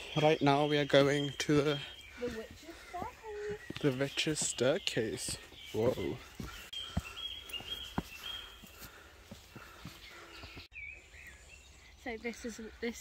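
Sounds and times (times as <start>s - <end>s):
footsteps on wooden planks: 1.3s - 10.7s.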